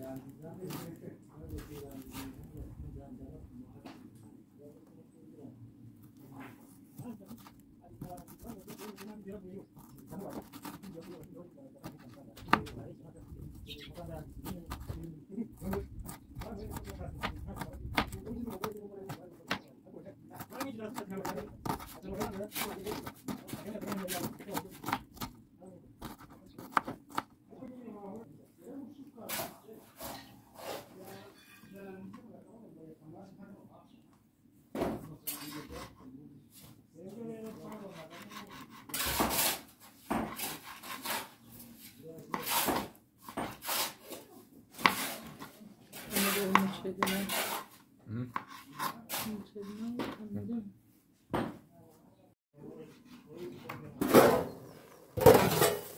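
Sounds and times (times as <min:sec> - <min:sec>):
voices talking: 0:12.1 - 0:24.9.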